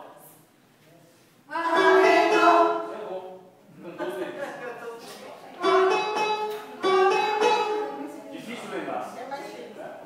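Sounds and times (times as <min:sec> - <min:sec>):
mixed choir singing: 0:01.6 - 0:03.0.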